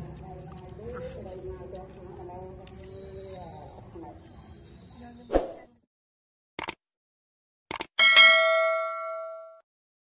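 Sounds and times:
notification bell ding: 0:08.0 - 0:09.6.

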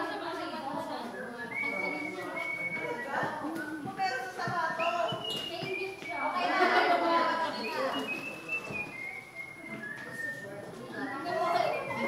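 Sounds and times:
indistinct chatter in hall: 0:00.0 - 0:12.0.

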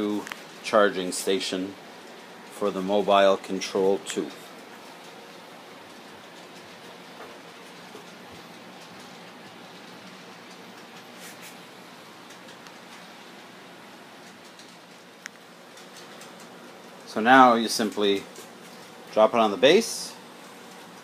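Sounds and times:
faint room hiss: 0:00.0 - 0:21.0.

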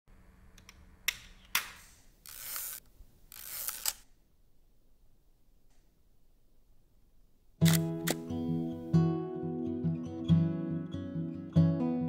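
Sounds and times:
winding knob ratcheting: 0:02.2 - 0:04.0
camera shutter clicks: 0:02.3 - 0:04.0, 0:07.6 - 0:08.3.

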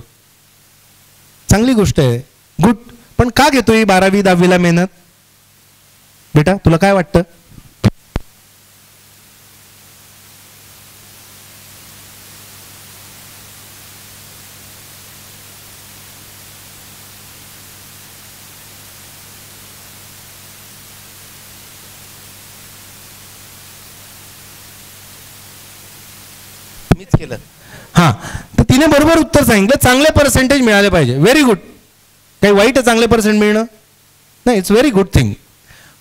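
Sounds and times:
low electrical hum: 0:00.0 - 0:36.0
steady hiss: 0:00.0 - 0:36.0.

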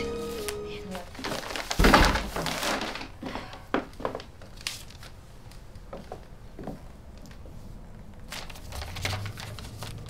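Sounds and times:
soft film music: 0:00.0 - 0:01.2
paper bag knocks set down: 0:01.3 - 0:03.0.

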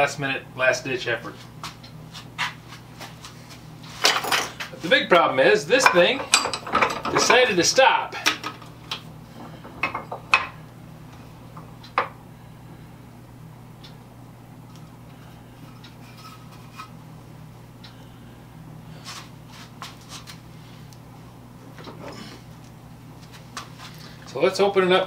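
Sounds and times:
steady low hum: 0:00.0 - 0:25.0
metal vise clicks and knocks: 0:05.9 - 0:07.4.

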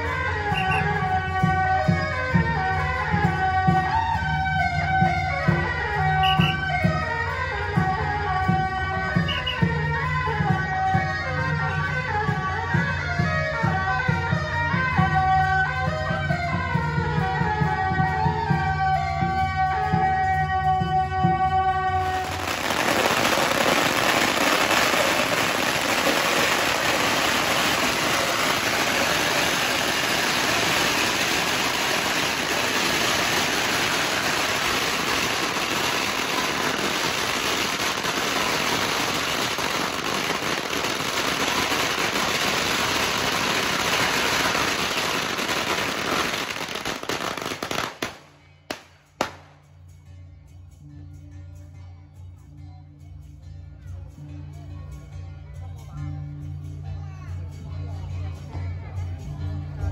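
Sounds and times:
firecrackers crackling: 0:00.0 - 0:11.1, 0:21.4 - 0:49.7.

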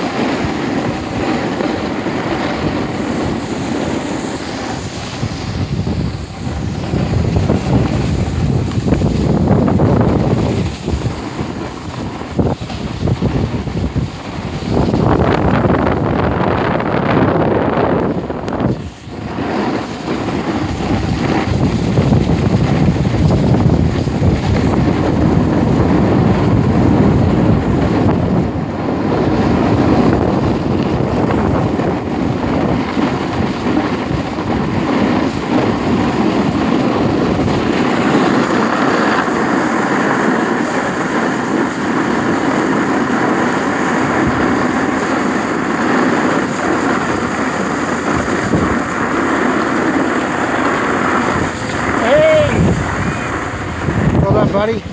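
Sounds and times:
skis sliding over snow: 0:00.0 - 0:54.9
wind buffeting microphone: 0:00.0 - 0:54.9.

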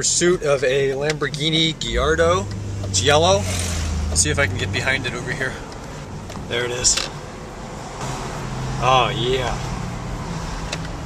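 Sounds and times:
car engine and road hum: 0:00.0 - 0:11.0.

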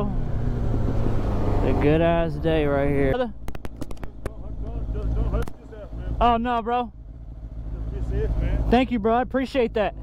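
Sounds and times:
motorcycle engine idling: 0:03.3 - 0:10.0
sharp clicks: 0:03.4 - 0:04.4, 0:05.0 - 0:05.6.

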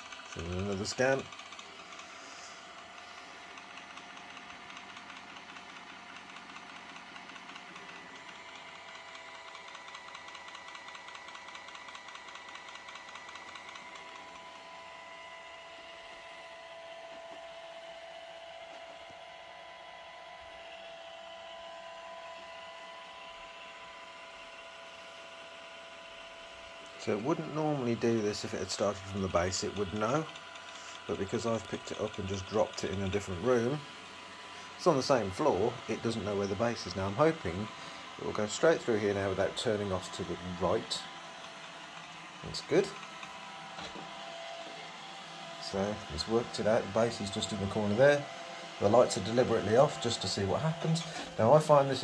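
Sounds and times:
fine rapid pulsing: 0:00.0 - 0:52.0
robot vacuum motor whine: 0:00.0 - 0:52.0.

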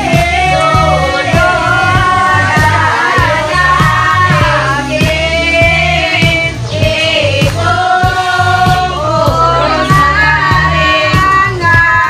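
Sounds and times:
group singing: 0:00.0 - 0:12.0
music with beat and bass: 0:00.0 - 0:12.0.

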